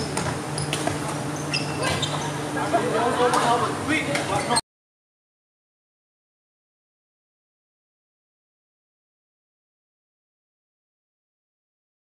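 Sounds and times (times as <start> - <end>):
shoes squeaking on wooden court: 0.0 - 2.6, 3.2 - 4.6.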